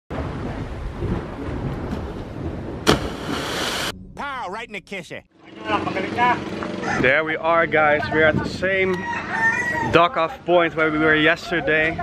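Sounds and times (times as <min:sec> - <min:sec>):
sea noise: 0:00.1 - 0:04.1
wind: 0:00.1 - 0:12.0
diver splashing into water: 0:02.8 - 0:03.9.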